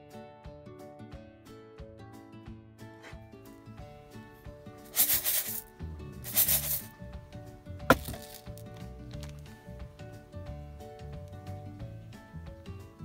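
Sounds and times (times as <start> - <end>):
background music: 0.0 - 13.0
rustling hissing bursts: 4.9 - 5.6, 6.2 - 6.9.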